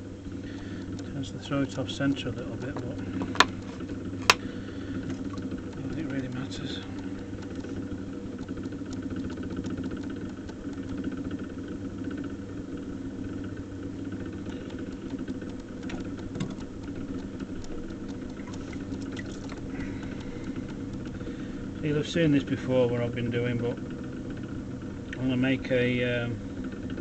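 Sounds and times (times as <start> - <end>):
potter's wheel motor humming: 0.0 - 27.0.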